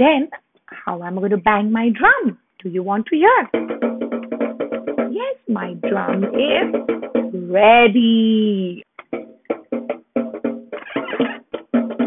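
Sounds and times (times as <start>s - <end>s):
toy drum strikes: 3.5s - 8.1s, 8.9s - 12.0s.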